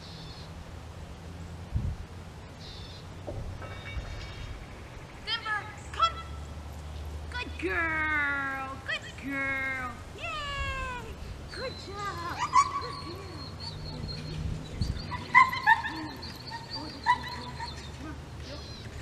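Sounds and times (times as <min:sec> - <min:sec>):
woman calling a dog: 0:05.2 - 0:06.5, 0:07.3 - 0:14.4, 0:15.0 - 0:19.0.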